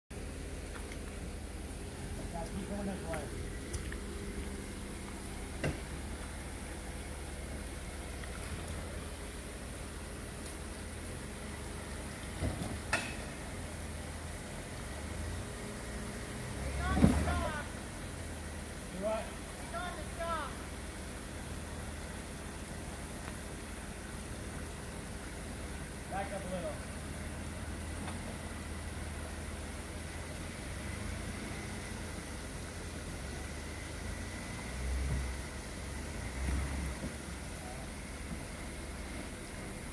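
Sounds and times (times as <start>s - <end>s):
car engine idling: 0.0s - 39.9s
people calling out: 16.6s - 17.8s, 19.3s - 20.8s.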